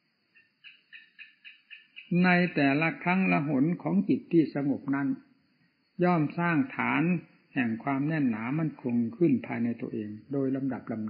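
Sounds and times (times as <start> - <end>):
small animal chirping rapidly: 0.3 - 2.6.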